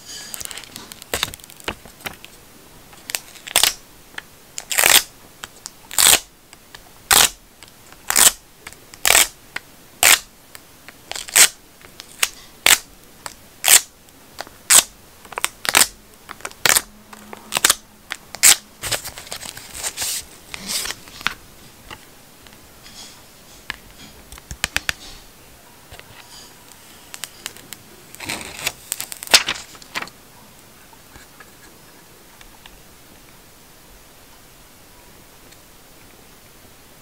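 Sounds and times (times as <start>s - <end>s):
soft rustling handling noise: 18.8s - 32.8s.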